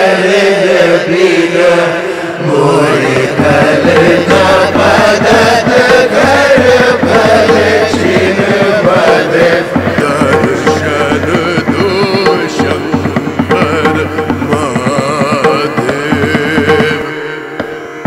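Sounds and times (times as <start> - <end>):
voices singing in chant style: 0.0 - 17.6
rapid percussion: 2.4 - 17.8.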